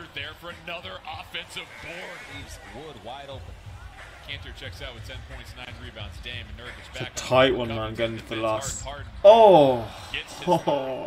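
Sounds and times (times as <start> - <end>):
commentator talking: 0.0 - 11.0.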